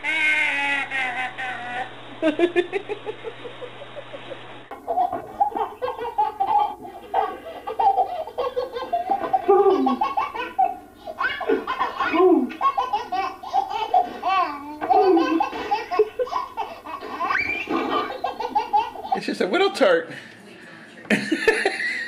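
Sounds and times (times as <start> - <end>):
baby laughing: 0.0 - 3.2, 4.7 - 19.3.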